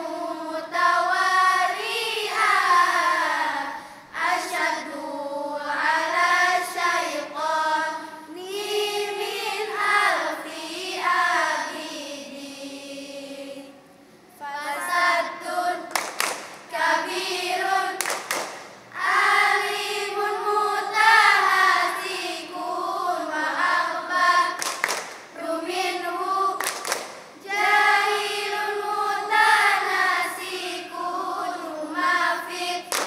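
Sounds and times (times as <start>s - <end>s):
girls chanting in unison: 0.0s - 33.0s
hand claps: 15.9s - 16.7s, 18.0s - 18.8s, 24.5s - 25.4s, 26.6s - 27.3s.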